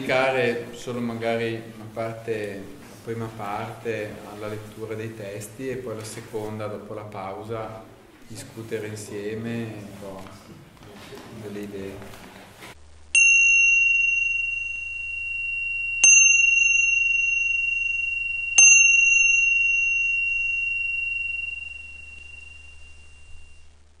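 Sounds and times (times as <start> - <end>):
small high-pitched bell: 13.2 - 23.8.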